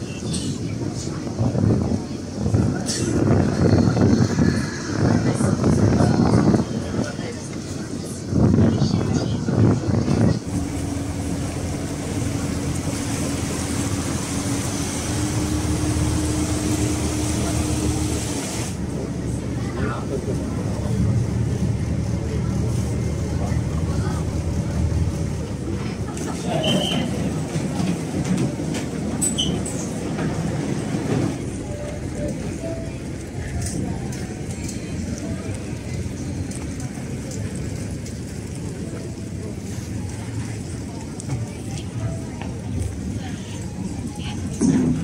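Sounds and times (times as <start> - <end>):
low rough engine rumble: 0.6 - 45.0
boat engine humming: 9.1 - 45.0.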